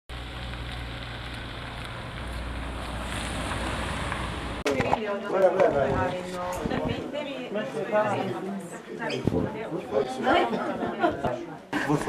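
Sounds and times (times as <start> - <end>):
low street rumble: 0.1 - 5.0
wind on microphone: 5.8 - 7.0, 9.2 - 9.6.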